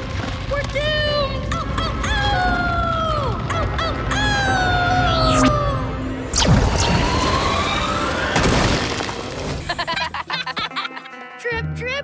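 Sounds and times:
crumbling rumbling with rising tone: 0.0s - 9.7s
background music: 0.0s - 12.0s
cartoon crash: 6.3s - 9.8s.

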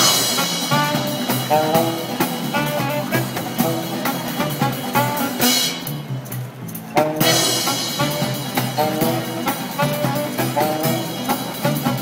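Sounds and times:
street band playing jazzy music: 0.0s - 12.0s.

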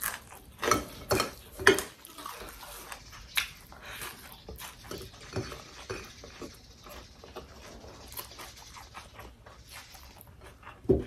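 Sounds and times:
chewing food: 0.0s - 11.0s.

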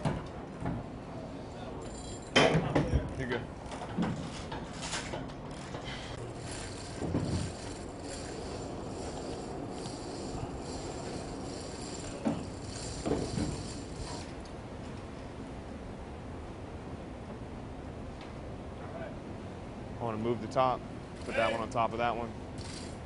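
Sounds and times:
steady background rumble: 0.0s - 23.0s.

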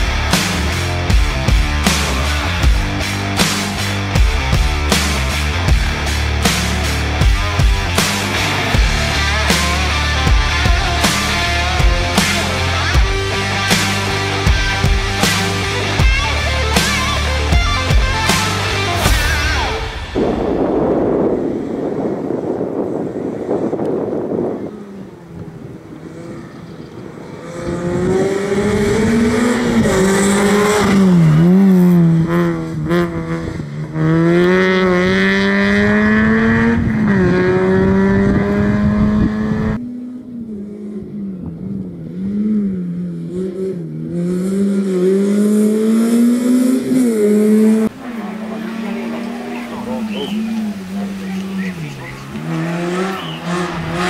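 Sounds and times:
car engine revving: 0.0s - 54.0s
noisy rush: 0.0s - 54.0s.

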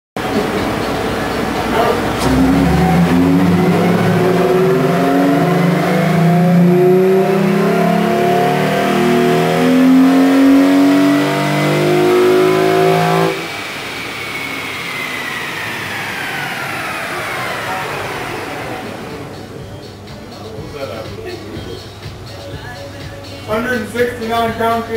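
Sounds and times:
car engine at full throttle: 1.7s - 19.6s
rising whine: 2.0s - 19.7s
dyno rollers spinning down: 2.1s - 19.5s.

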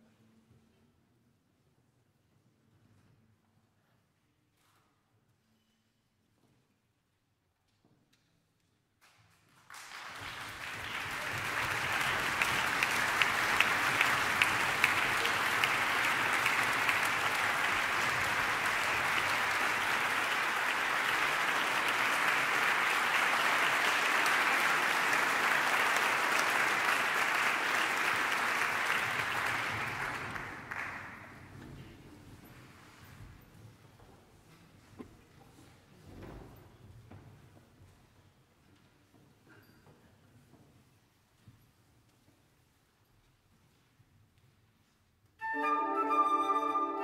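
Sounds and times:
audience applauding: 9.6s - 31.5s.

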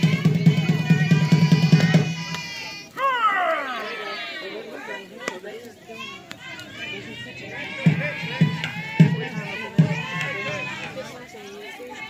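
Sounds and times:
children calling out and chattering: 0.0s - 12.0s
long falling shout: 0.8s - 4.4s.

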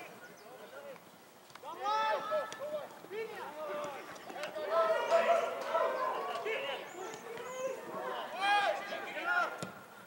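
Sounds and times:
players shouting: 1.6s - 9.8s.

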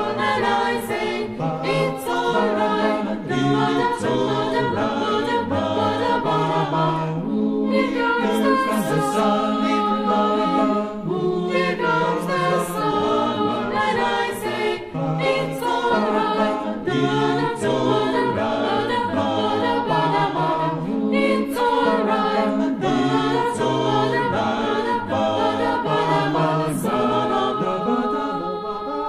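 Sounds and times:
choir singing a cappella: 0.0s - 29.0s.

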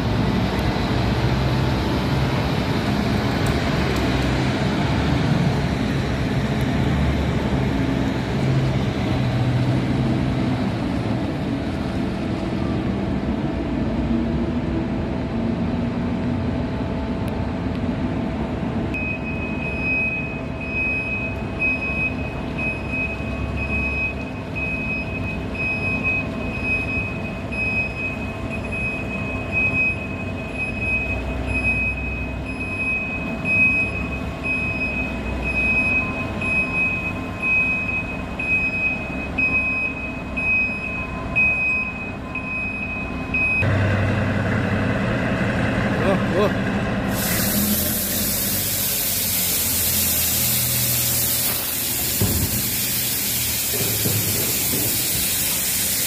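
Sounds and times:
diesel engine running: 0.0s - 56.0s
machinery: 0.0s - 56.0s
truck reversing alarm beeping: 18.9s - 44.9s, 47.1s - 56.0s.

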